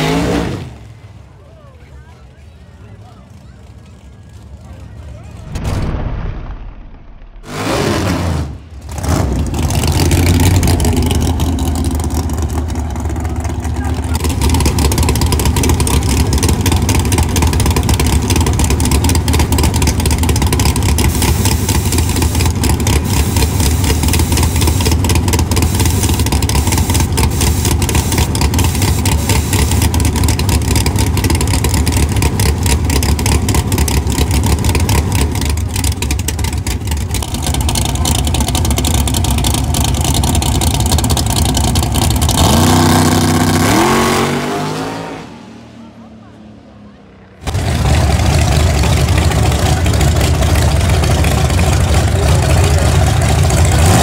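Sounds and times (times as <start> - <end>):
drag car engine idling and launching: 0.0 - 54.0.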